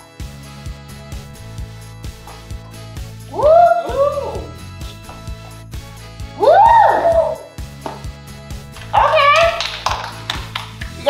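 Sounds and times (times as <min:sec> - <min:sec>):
background music with steady beat: 0:00.0 - 0:11.0
person cheering woo: 0:03.3 - 0:04.6, 0:06.4 - 0:07.6, 0:09.0 - 0:09.7.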